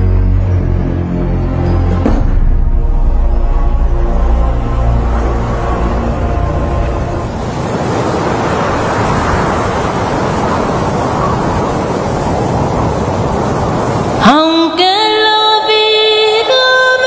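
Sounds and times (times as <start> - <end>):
low sustained music chord: 0.0 - 7.5
loud steady rushing noise: 2.2 - 17.0.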